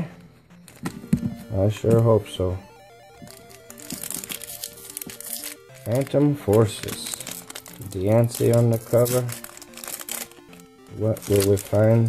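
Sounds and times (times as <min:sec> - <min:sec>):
quiet background music: 0:00.0 - 0:12.0
foil wrapper crinkling: 0:03.4 - 0:12.0.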